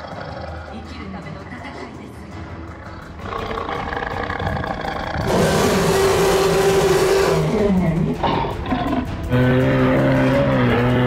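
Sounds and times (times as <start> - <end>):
dinosaur roar: 0.0 - 0.8, 2.7 - 11.0
background music: 0.0 - 11.0.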